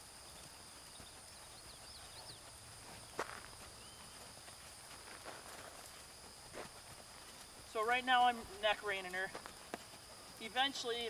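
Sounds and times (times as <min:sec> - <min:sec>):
high insect whine: 0:00.0 - 0:11.0
horse hooves on sand: 0:00.0 - 0:11.0
birds chirping: 0:00.2 - 0:04.4.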